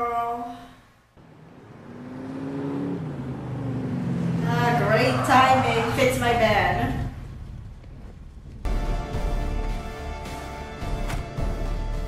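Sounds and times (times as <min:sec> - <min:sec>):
muscle car engine accelerating: 0:01.1 - 0:12.0.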